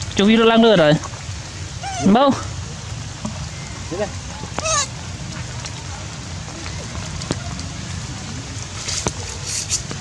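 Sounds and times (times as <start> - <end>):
monkey high-pitched call: 1.8 - 2.2, 4.6 - 5.0.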